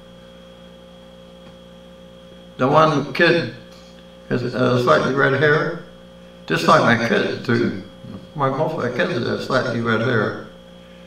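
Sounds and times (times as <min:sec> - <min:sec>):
electrical hum with high whine: 0:00.0 - 0:11.0.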